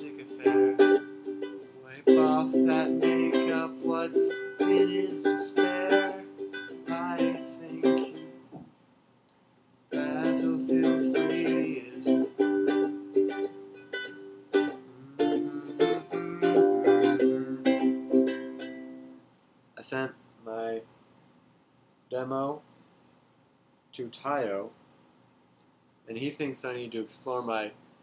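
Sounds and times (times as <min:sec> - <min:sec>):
ukulele strumming: 0:00.0 - 0:08.4, 0:09.9 - 0:19.2.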